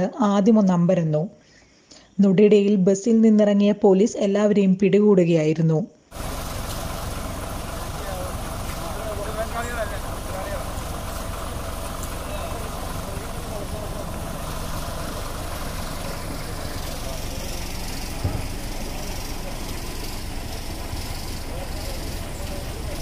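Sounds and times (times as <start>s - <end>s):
bus engine idling: 6.1s - 23.0s.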